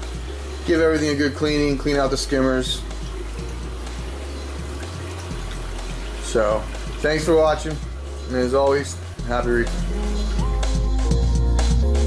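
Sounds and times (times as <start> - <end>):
music with low bass line: 0.0 - 12.0
water splashing and trickling: 0.0 - 12.0.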